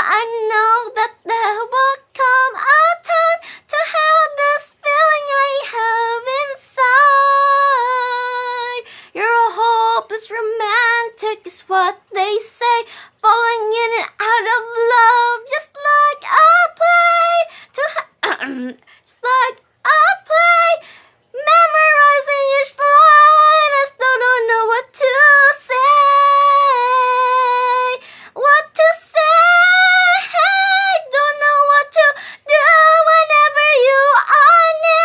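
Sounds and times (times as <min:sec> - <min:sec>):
woman singing unaccompanied: 0:00.0 - 0:35.0.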